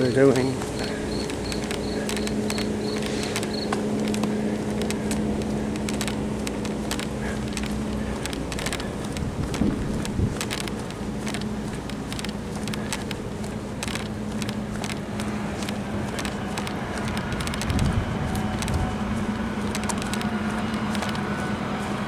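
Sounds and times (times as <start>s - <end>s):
rumbling background: 0.0s - 22.0s
steady low hum: 0.0s - 22.0s
light clicks: 0.6s - 18.9s, 19.6s - 21.4s.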